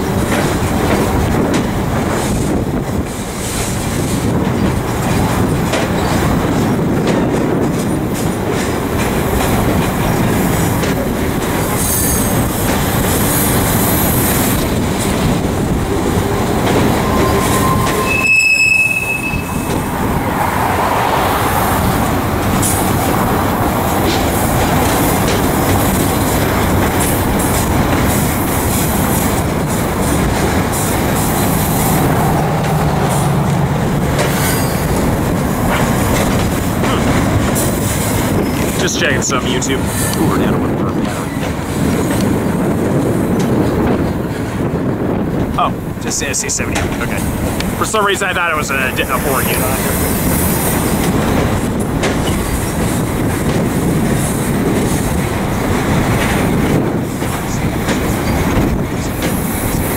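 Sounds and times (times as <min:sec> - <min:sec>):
train wheels rumbling and rattling: 0:00.0 - 0:59.9
high wheel squeal: 0:15.9 - 0:21.0, 0:34.1 - 0:35.0.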